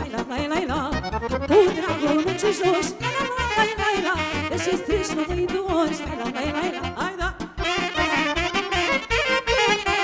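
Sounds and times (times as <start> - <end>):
accordion: 0.0 - 10.0
keyboard: 0.0 - 10.0
saxophone: 1.3 - 10.0.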